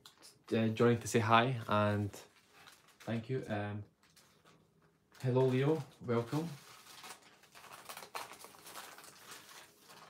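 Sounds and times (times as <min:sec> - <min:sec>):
paper rustling and crackling: 0:01.7 - 0:10.0.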